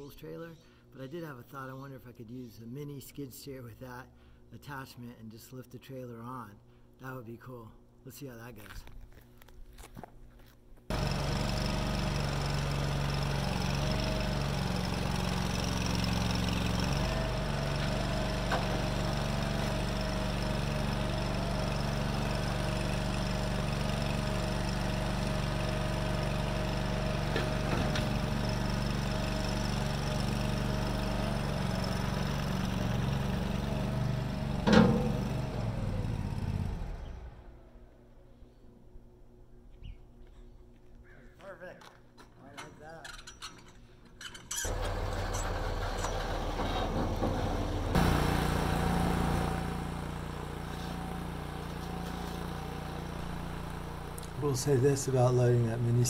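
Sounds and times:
skid steer engine running: 0:10.9 - 0:37.6, 0:44.5 - 0:56.0
sharp clunk: 0:34.6 - 0:35.2.

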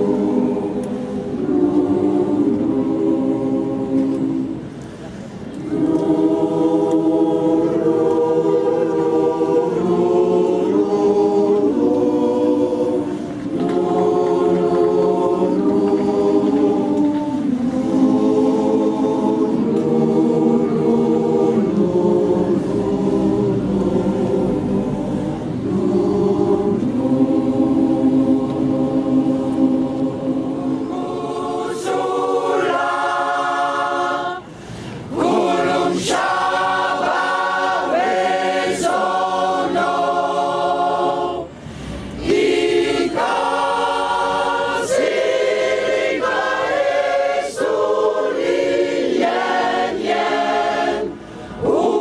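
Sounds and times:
mixed choir singing a cappella: 0:00.0 - 0:52.0.

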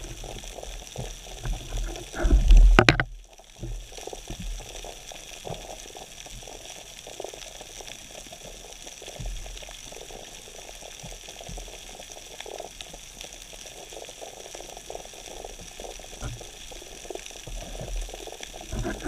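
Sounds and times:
underwater bubbling water: 0:00.0 - 0:19.0.

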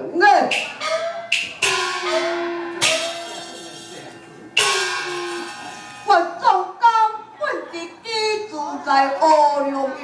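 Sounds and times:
gongs and cymbals clashing: 0:00.5 - 0:06.5.

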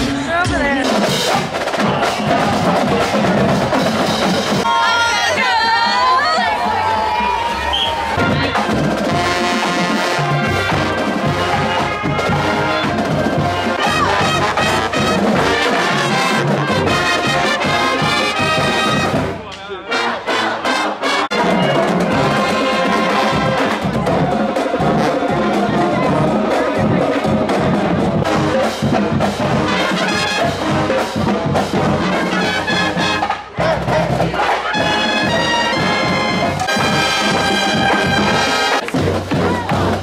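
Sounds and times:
marching band playing brass tune: 0:00.0 - 0:40.0.

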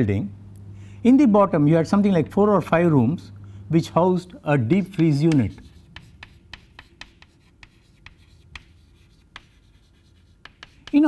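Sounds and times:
chalk tapping and scraping: 0:04.8 - 0:11.0.

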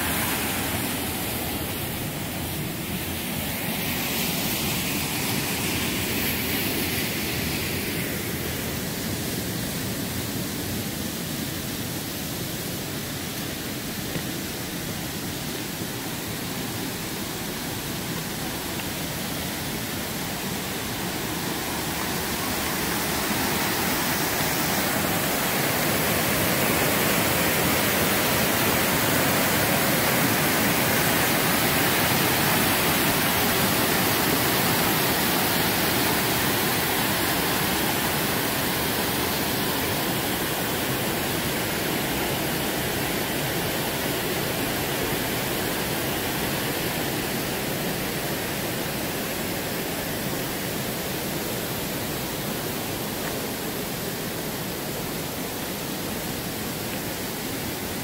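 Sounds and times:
river water rushing over boulders: 0:00.0 - 0:58.0.

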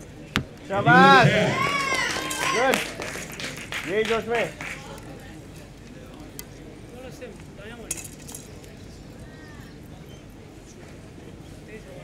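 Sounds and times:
faint distant voices: 0:00.0 - 0:12.0.

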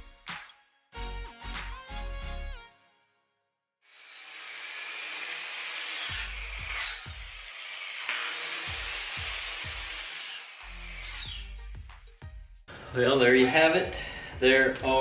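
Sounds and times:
angle grinder grinding steel: 0:03.9 - 0:11.7.

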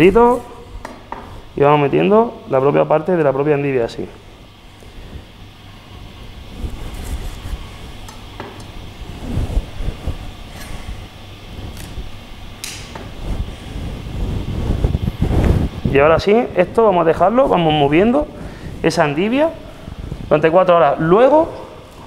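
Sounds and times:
low rumbling background noise: 0:00.0 - 0:22.0.

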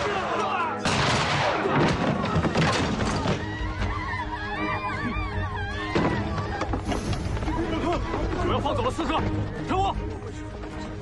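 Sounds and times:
dramatic film score: 0:00.0 - 0:11.0
thuds and bangs: 0:00.8 - 0:03.5.

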